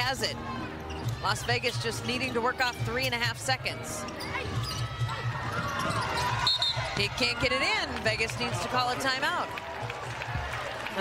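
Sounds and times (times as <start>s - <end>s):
crowd noise: 0.0s - 11.0s
sneakers squeaking on court: 0.5s - 3.1s, 4.0s - 7.4s.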